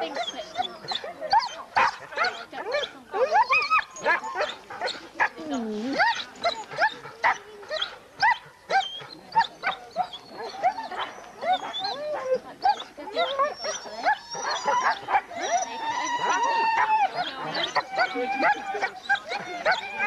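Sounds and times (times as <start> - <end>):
sled dogs barking and yelping: 0.0 - 20.0.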